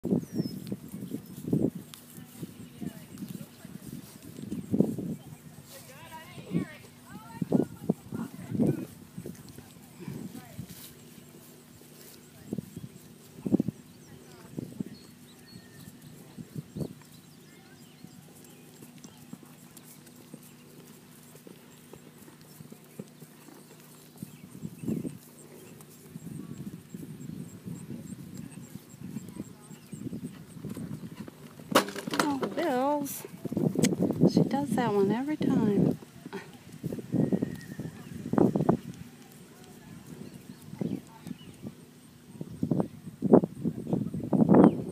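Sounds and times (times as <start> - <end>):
horse hooves thudding on sand: 0.0 - 42.7
person talking: 32.2 - 33.3, 34.3 - 35.9.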